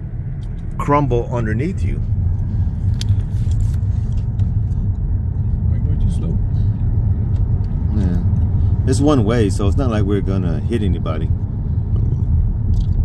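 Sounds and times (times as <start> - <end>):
car road rumble from inside: 0.0 - 13.0.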